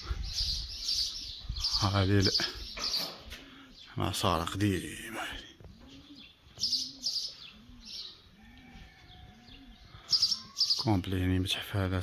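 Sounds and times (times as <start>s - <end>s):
small birds chirping: 0.0s - 12.0s
dove cooing: 5.2s - 10.8s.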